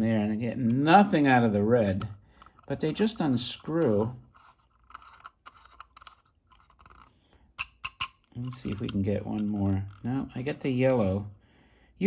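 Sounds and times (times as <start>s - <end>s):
bulb scratching in metal socket: 2.0s - 10.0s.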